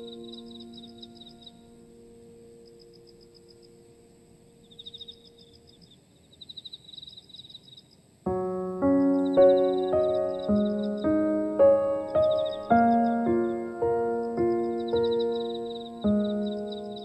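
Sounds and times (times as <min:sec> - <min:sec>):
soft piano chord: 0:00.0 - 0:05.7, 0:08.3 - 0:17.0
high rapid chirping trills: 0:04.6 - 0:17.0.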